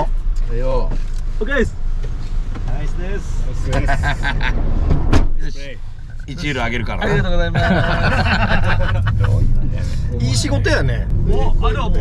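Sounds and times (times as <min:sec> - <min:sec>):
voices and laughter: 0:03.6 - 0:04.7, 0:07.0 - 0:10.1
van engine idling: 0:05.3 - 0:12.0.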